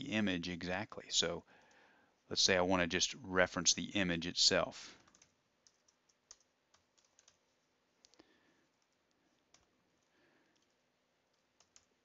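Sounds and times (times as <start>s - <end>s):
faint computer keyboard typing: 1.4s - 1.9s, 4.9s - 12.0s.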